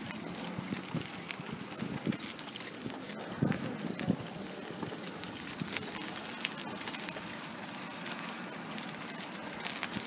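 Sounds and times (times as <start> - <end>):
footsteps on paved street: 0.0 - 10.0.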